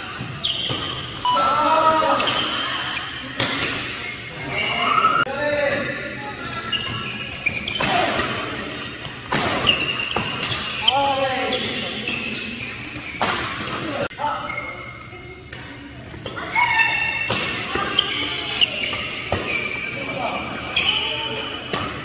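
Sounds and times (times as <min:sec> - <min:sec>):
shoes squeaking on court: 0:00.0 - 0:05.3, 0:06.1 - 0:22.0
rackets hitting shuttlecock: 0:07.7 - 0:10.8.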